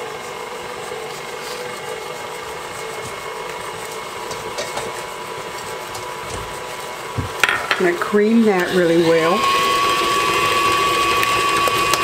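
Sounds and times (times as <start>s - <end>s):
stand mixer humming and whining: 0.0s - 12.0s.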